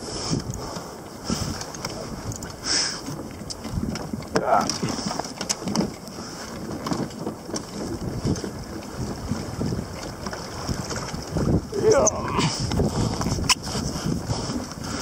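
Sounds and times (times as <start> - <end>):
water slapping against hull: 0.0 - 15.0
wind buffeting microphone: 0.0 - 15.0.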